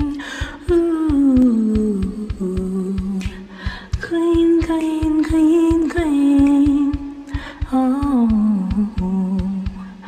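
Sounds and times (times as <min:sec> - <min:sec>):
steady drum beat: 0:00.0 - 0:10.0
woman singing long notes: 0:00.0 - 0:10.0.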